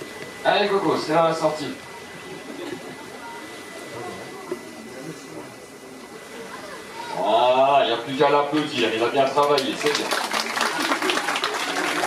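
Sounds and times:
faint audience chatter: 0:00.0 - 0:12.0.

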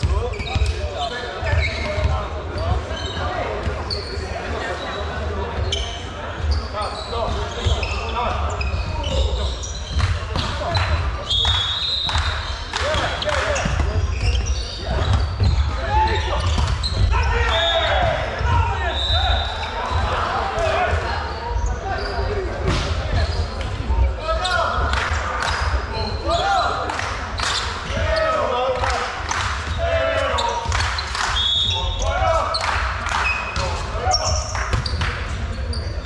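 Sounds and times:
shoe squeaks on wooden court: 0:00.0 - 0:20.1, 0:20.7 - 0:23.7, 0:29.7 - 0:36.0
players calling out: 0:23.2 - 0:36.0.

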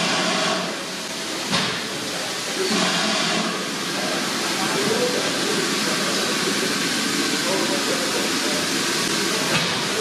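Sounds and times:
steam hissing: 0:00.0 - 0:10.0
faint voices: 0:00.6 - 0:10.0.

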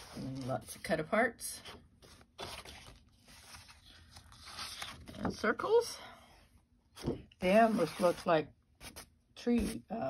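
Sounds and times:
paper pages rustling: 0:02.0 - 0:05.3.

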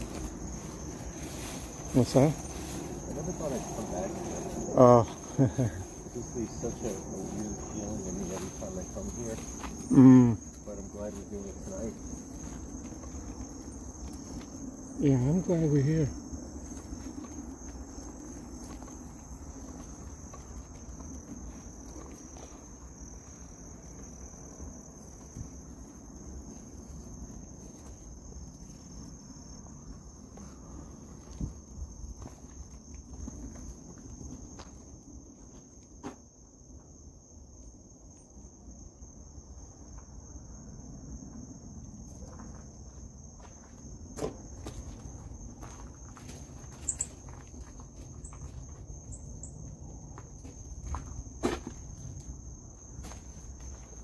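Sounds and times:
footsteps through grass: 0:00.0 - 0:14.7
crickets trilling: 0:00.0 - 0:54.0.

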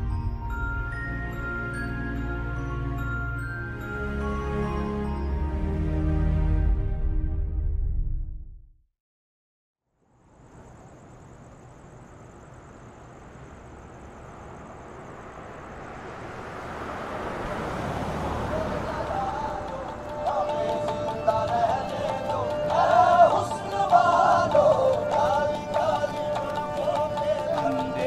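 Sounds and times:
car approaching on road: 0:10.4 - 0:28.0
music with singing voice: 0:18.5 - 0:28.0.

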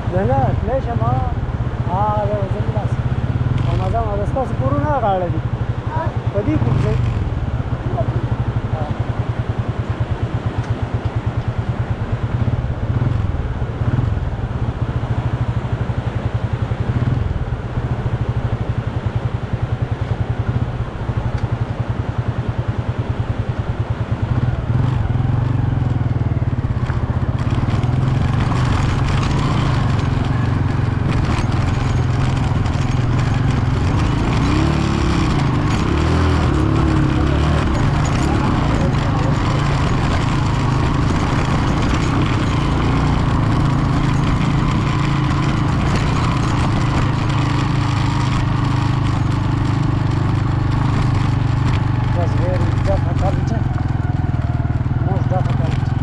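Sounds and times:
engine rumbling: 0:00.0 - 0:56.0.

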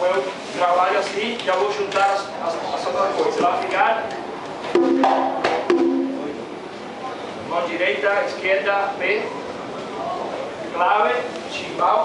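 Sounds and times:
conga drums ringing: 0:04.7 - 0:06.7.

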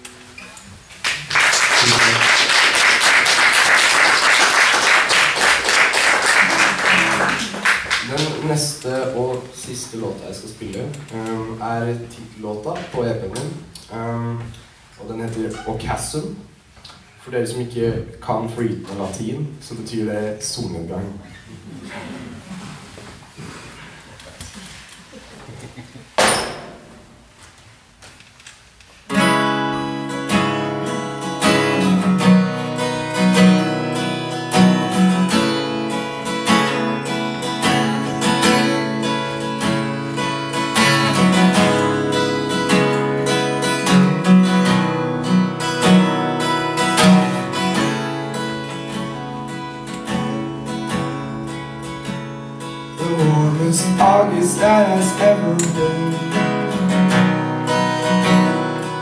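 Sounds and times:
acoustic guitar strumming: 0:00.0 - 0:09.4, 0:29.1 - 0:59.0
person singing: 0:53.0 - 0:56.7.

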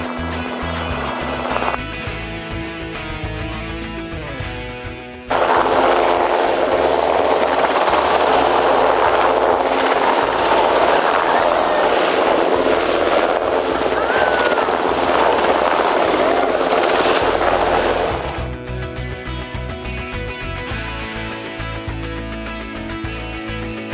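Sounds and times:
helicopter rotor and turbine noise: 0:00.0 - 0:23.9.

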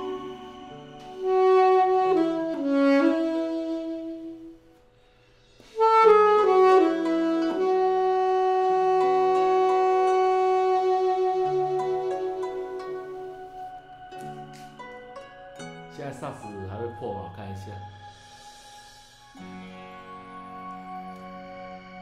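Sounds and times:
alto saxophone melody: 0:00.0 - 0:14.6, 0:18.0 - 0:22.0.

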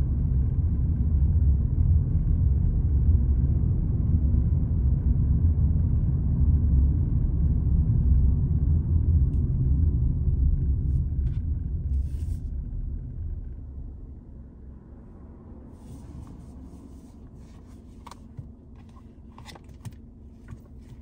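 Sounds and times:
car cabin rumble while driving: 0:00.0 - 0:21.0.

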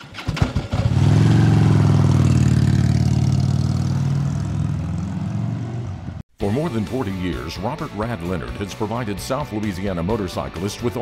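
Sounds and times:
motorcycle engine running: 0:00.3 - 0:06.2.

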